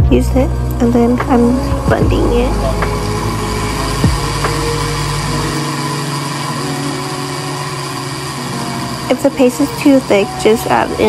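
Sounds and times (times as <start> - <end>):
blender motor grinding: 1.6 - 11.0.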